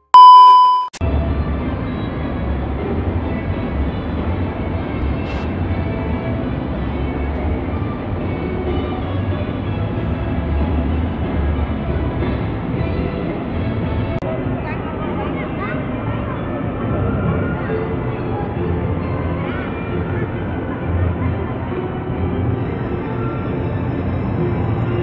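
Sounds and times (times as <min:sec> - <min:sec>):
music: 0:01.0 - 0:25.0.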